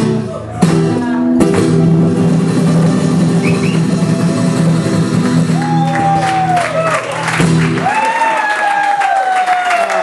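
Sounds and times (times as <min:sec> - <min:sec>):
acoustic guitar chord strum: 0:00.0 - 0:05.6.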